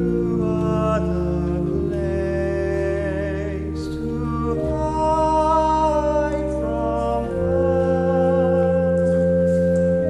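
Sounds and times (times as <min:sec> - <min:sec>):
electronic organ sustained chords: 0:00.0 - 0:10.0
male choir singing softly: 0:00.0 - 0:10.0.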